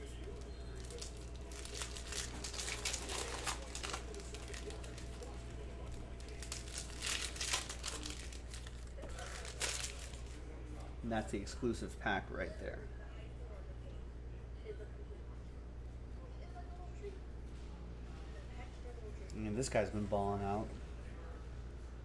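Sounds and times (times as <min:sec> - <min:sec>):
cellophane wrapper crinkling and tearing: 0:00.1 - 0:10.4.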